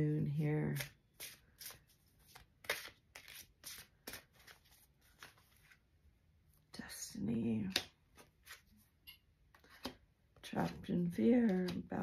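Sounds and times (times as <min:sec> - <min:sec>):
cards shuffling: 0:00.7 - 0:05.8, 0:07.7 - 0:08.8, 0:11.3 - 0:12.0.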